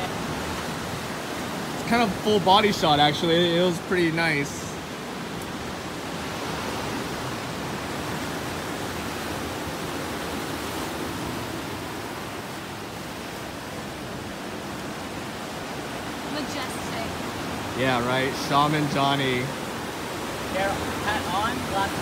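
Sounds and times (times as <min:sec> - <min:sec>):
ocean surf: 0:00.0 - 0:22.0.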